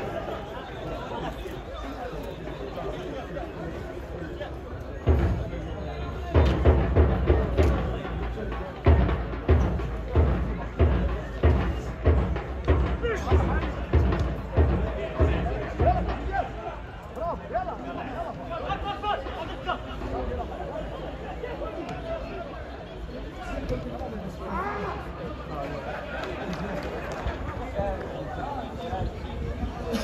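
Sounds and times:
people's voices: 0:00.0 - 0:30.0
deep drum beating: 0:05.1 - 0:16.6.

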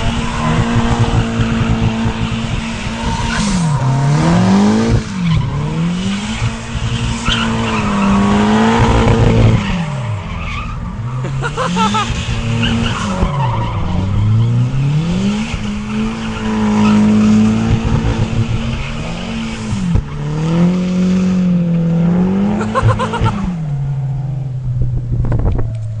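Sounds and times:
car engine at high revs: 0:00.0 - 0:26.0.

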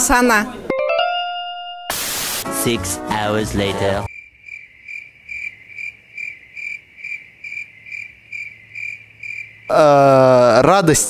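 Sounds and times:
narrator speaking: 0:02.5 - 0:04.1, 0:09.7 - 0:11.0
cricket chirping: 0:04.1 - 0:09.9.

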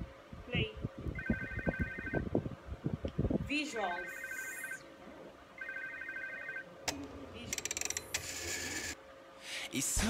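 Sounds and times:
electronic telephone ring: 0:01.1 - 0:02.2, 0:04.0 - 0:04.8, 0:05.6 - 0:06.7, 0:07.5 - 0:09.0.

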